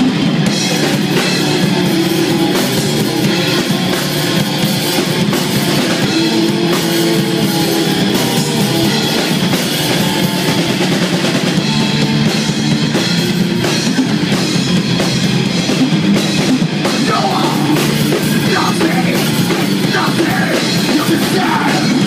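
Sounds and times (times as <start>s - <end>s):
heavy metal band playing live: 0.0s - 22.0s.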